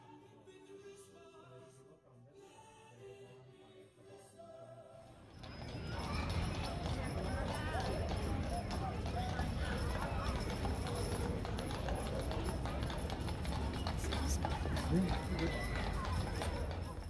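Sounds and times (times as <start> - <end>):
crowd chatter: 0.0 - 17.0
horse hooves clip-clopping on pavement: 5.3 - 17.0.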